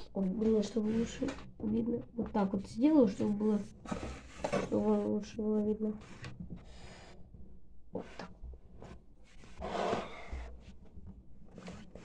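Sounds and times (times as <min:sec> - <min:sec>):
person breathing: 0:06.6 - 0:07.3.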